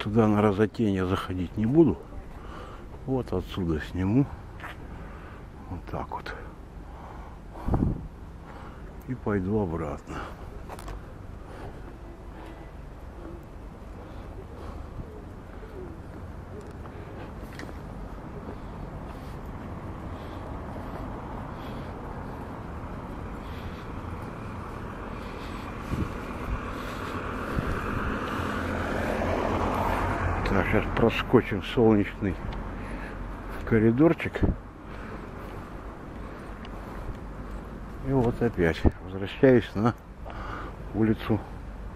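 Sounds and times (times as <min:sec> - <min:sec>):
car approaching: 0:00.0 - 0:41.9
low street background: 0:00.0 - 0:41.9.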